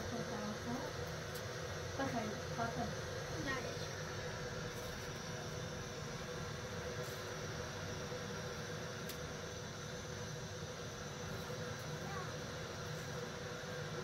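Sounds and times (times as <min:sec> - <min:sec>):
faint hum: 0:00.0 - 0:14.0.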